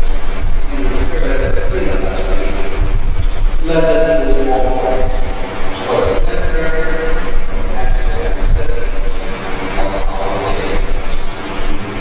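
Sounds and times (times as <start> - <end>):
steady low hum: 0.0 - 12.0
man speaking over loudspeakers: 0.7 - 3.0, 3.6 - 12.0.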